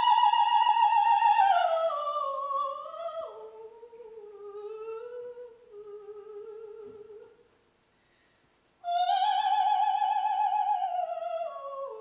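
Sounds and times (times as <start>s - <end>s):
soprano singing softly: 0.0s - 7.5s, 8.8s - 12.0s.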